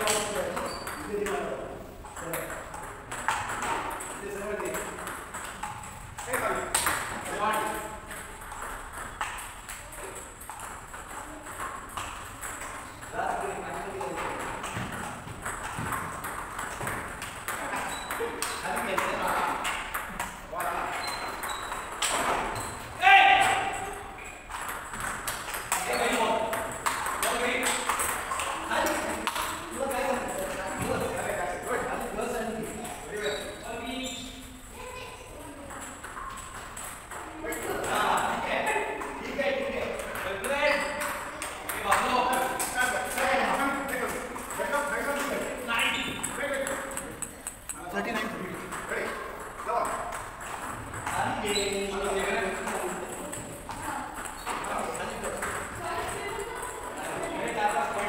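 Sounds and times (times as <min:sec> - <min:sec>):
table tennis ball knocking: 0:00.0 - 0:13.1, 0:13.8 - 0:22.7, 0:23.3 - 0:33.0, 0:39.9 - 0:56.9
people talking and calling: 0:17.4 - 0:58.0.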